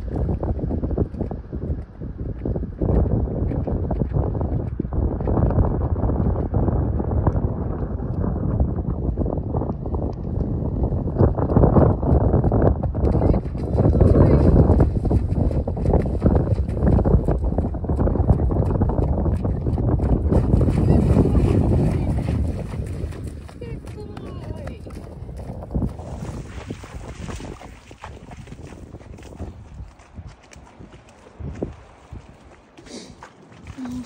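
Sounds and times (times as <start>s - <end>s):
wind buffeting microphone: 0.0s - 34.0s
hooves splashing through water: 9.8s - 34.0s.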